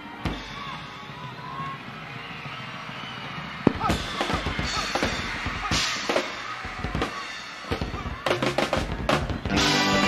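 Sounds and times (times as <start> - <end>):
live rock band: 3.9 - 10.0.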